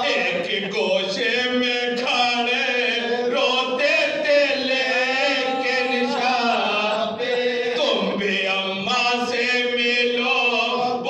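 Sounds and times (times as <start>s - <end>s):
men chanting in unison: 0.0s - 11.0s.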